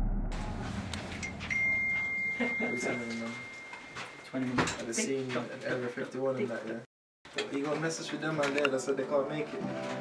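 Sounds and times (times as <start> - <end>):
high-pitched electronic beep: 1.1 - 4.3.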